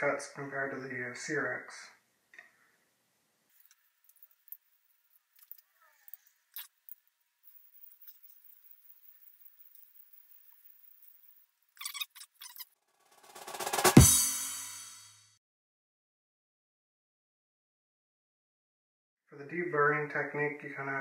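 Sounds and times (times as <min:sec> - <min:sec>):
drum roll into loud hit: 0:13.2 - 0:15.2
sharp drum hits: 0:13.2 - 0:15.3.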